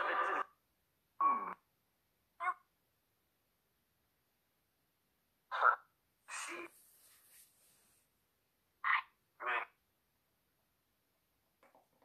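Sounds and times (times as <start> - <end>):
croaky voice-like bursts: 5.5 - 6.7.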